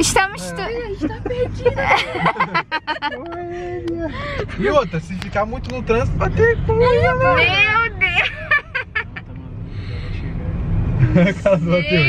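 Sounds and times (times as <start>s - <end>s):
car cabin rumble: 0.0s - 12.0s
woman laughing: 1.0s - 3.4s.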